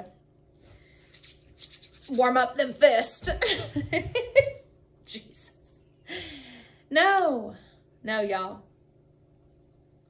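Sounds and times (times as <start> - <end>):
hands rubbing together: 1.1 - 2.4.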